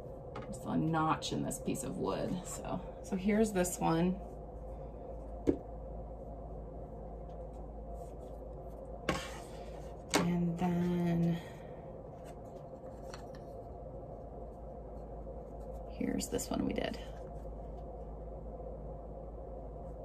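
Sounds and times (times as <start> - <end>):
low hum: 0.0 - 20.0.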